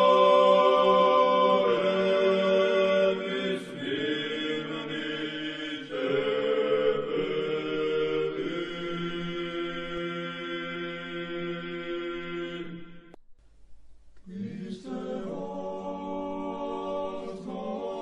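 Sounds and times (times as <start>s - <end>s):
group chanting held chords: 0.0s - 13.1s, 14.3s - 18.0s.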